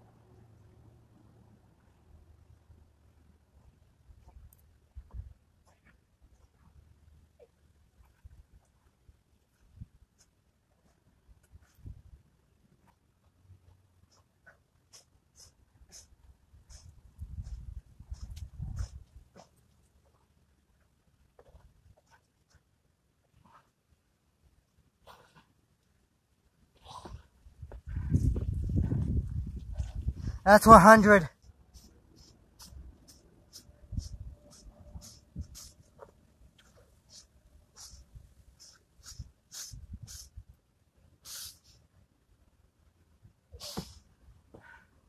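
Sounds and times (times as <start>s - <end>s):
wind rumble on microphone: 17.1s - 19.2s, 27.5s - 30.5s, 39.2s - 40.5s
dull low thumps: 27.6s - 30.4s.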